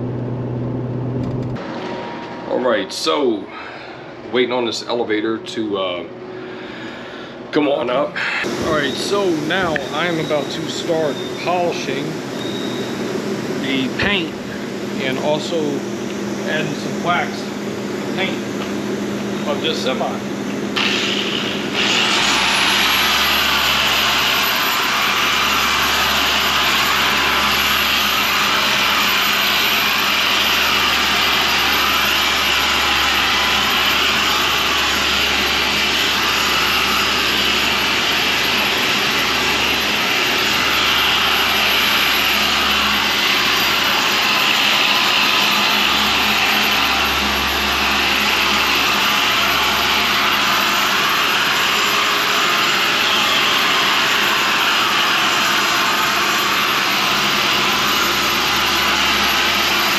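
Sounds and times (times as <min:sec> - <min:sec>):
electric polisher whirring: 0:08.4 - 0:15.2, 0:20.4 - 0:59.9.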